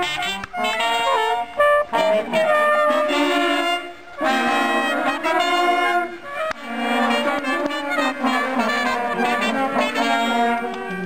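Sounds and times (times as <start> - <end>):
brass playing held notes: 0.0 - 11.0
trumpet playing: 0.0 - 11.0.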